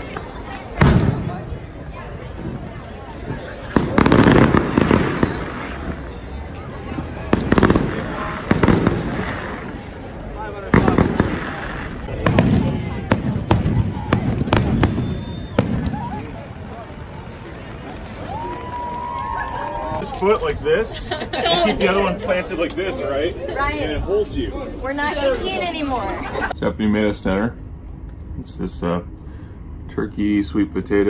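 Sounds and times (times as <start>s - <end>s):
fireworks booming: 0.0s - 17.1s
fireworks crackling: 0.0s - 20.4s
people's voices: 0.0s - 31.0s.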